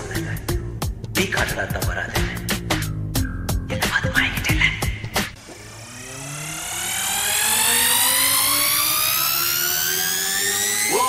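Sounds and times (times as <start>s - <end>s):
rising synthesizer sweep: 5.4s - 11.0s.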